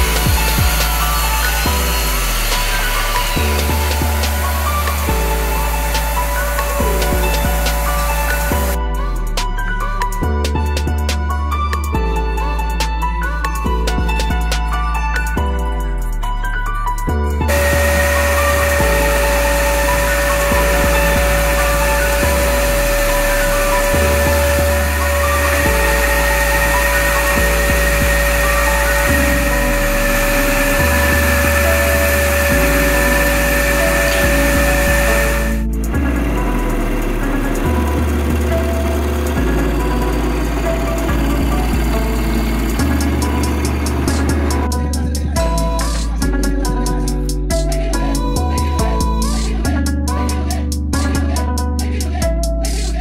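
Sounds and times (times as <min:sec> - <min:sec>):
band saw whining through wood: 0:00.0 - 0:08.8, 0:17.4 - 0:46.8
background music with bass line: 0:00.0 - 0:53.0.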